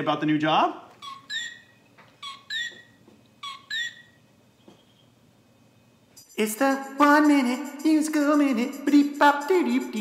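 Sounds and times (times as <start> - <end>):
two-note whistled calls: 1.0 - 5.0.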